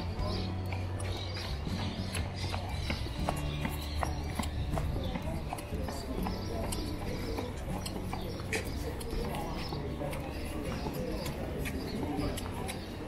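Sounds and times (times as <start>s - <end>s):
distant voices: 0.0s - 13.0s
footsteps on paved tiles: 0.0s - 13.0s.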